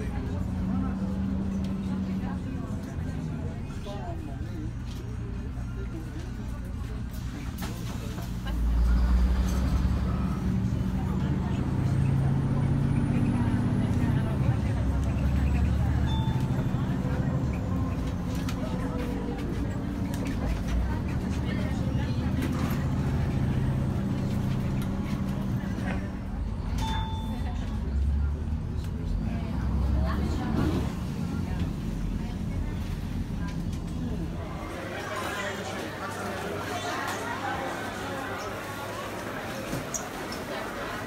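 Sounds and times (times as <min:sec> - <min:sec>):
bus engine droning: 0:00.0 - 0:41.0.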